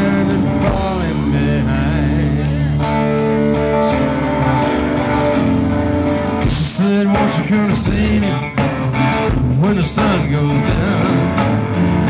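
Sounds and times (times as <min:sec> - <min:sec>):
singing vocals: 0:00.0 - 0:02.7, 0:06.4 - 0:08.6, 0:09.3 - 0:11.6
live rock band playing: 0:00.0 - 0:12.0.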